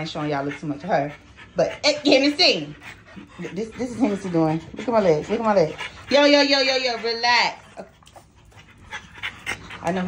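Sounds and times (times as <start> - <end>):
dog panting: 0.0 - 10.0.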